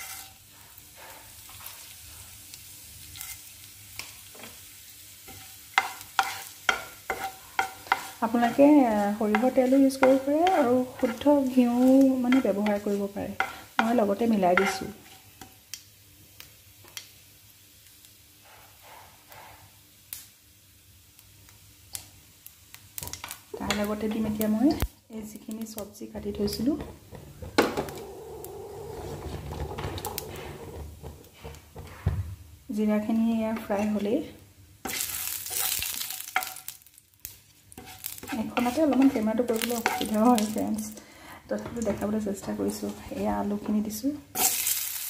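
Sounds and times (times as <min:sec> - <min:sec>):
wooden spatula scraping pan: 0:00.0 - 0:01.9, 0:05.3 - 0:15.3, 0:26.2 - 0:32.1, 0:37.8 - 0:40.6
seeds sizzling in oil: 0:00.0 - 0:31.6, 0:32.6 - 0:45.0.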